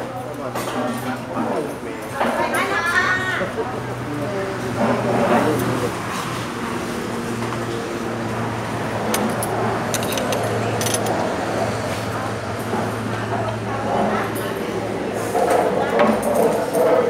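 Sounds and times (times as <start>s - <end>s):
people talking: 0.0s - 6.0s, 10.1s - 17.0s.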